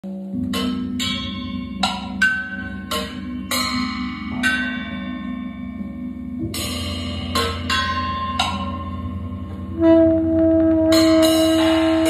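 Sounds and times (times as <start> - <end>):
bell-like struck tones: 0.1 - 12.0
steady low drone: 0.1 - 12.0.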